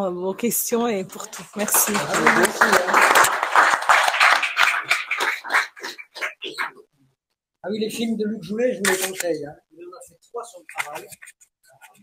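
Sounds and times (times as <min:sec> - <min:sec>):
audience applauding: 0:01.2 - 0:06.8.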